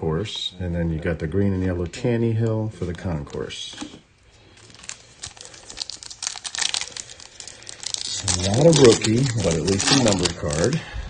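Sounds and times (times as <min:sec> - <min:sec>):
foil wrapper crinkling and tearing: 0:04.4 - 0:10.8.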